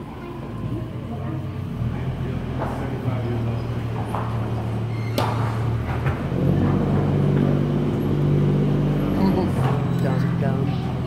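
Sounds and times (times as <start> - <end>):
tram engine running: 0.0 - 11.0.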